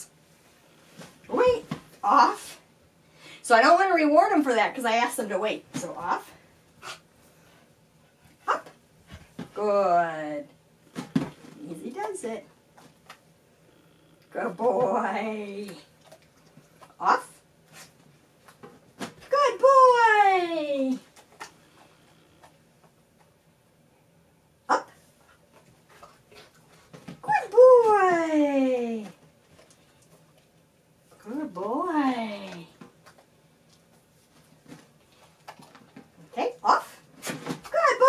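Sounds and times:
dog barking: 24.7 - 25.0.

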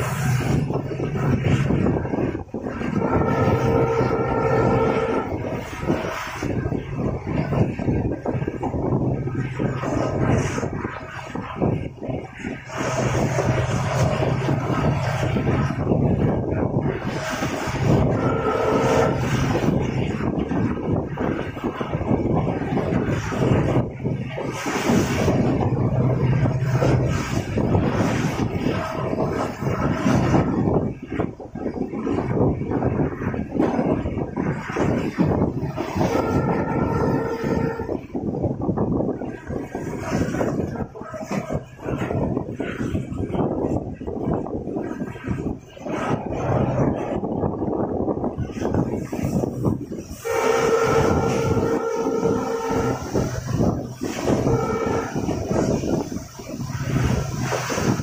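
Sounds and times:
steady low hum: 0.0 - 58.0
wind on microphone: 0.0 - 58.0.

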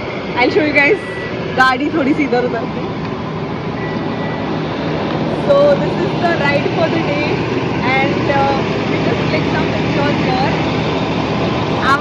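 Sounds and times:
vehicle engines idling: 0.0 - 12.0
people talking: 0.4 - 2.9, 5.4 - 10.6, 11.8 - 12.0.

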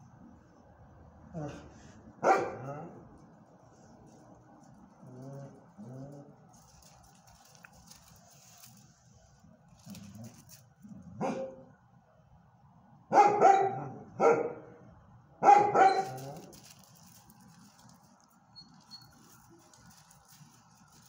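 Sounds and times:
dog barking: 2.2 - 3.0, 11.2 - 11.7, 13.1 - 14.7, 15.4 - 16.5.

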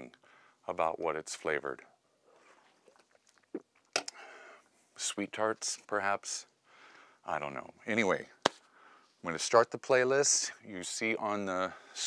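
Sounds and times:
person sipping and swallowing: 2.3 - 3.8.

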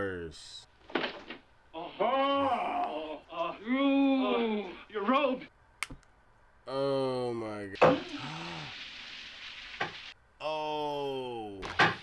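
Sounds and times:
shower running: 7.8 - 10.2.

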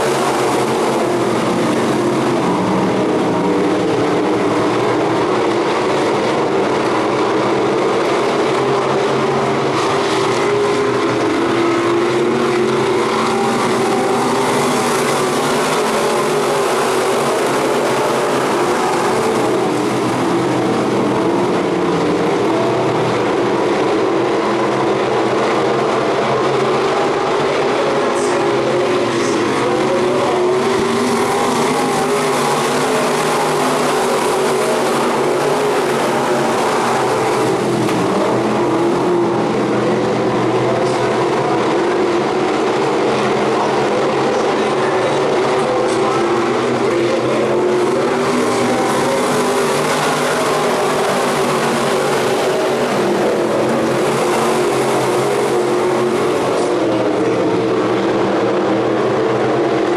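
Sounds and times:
race car engines roaring: 0.0 - 59.9.

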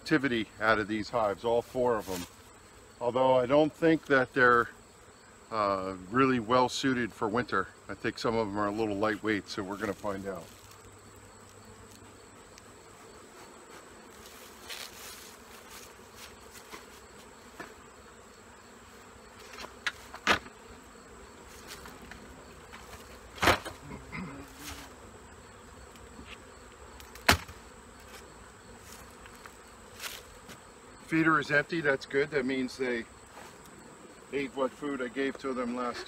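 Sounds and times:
honeybees buzzing: 0.0 - 36.0
hive covers knocking: 21.7 - 23.9, 27.1 - 28.2.

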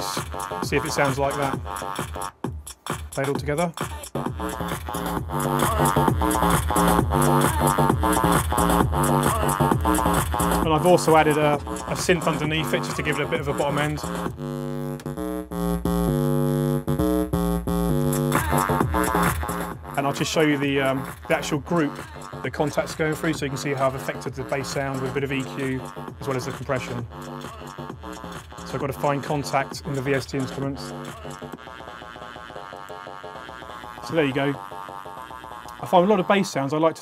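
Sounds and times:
electronic bass line: 0.0 - 37.0.

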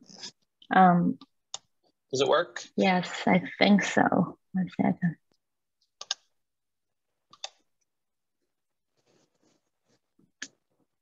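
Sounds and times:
computer mouse clicks: 6.0 - 6.3, 7.3 - 7.6.

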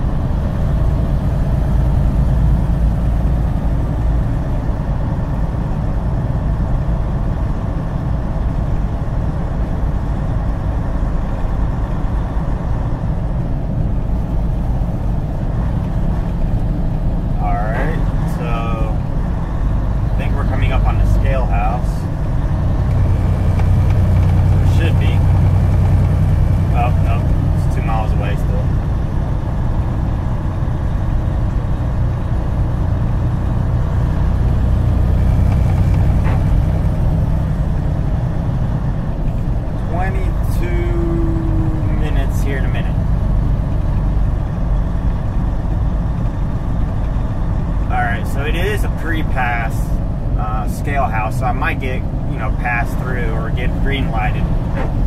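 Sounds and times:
truck engine and tyres droning: 0.0 - 55.0.

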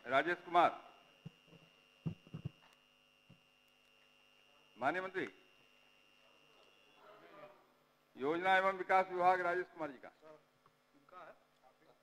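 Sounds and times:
electrical hum: 0.0 - 9.2
faint high whine: 0.0 - 12.0.

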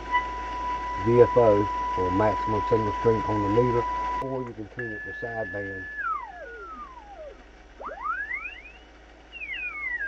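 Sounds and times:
faint parallel tones: 0.0 - 10.0
radio heterodyne whistle: 0.1 - 10.0.

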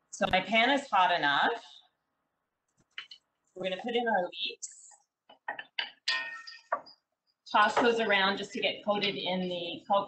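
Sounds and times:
ringing clink: 6.1 - 6.7.

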